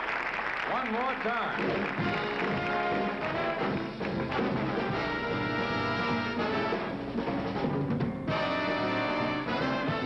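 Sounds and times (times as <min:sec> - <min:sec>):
orchestral music with brass: 0:01.8 - 0:10.0.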